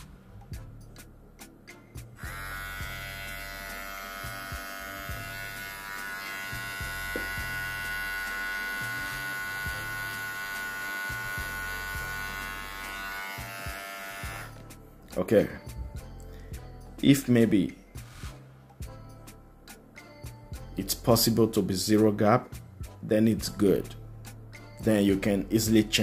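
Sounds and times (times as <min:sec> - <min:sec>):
hair trimmer buzzing whine: 0:02.2 - 0:14.7.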